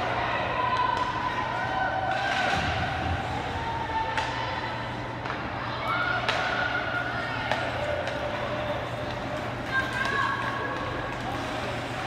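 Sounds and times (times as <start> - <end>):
low hum of indoor hall: 0.0 - 12.0
hockey sticks and puck clacking: 0.1 - 3.2, 3.9 - 12.0.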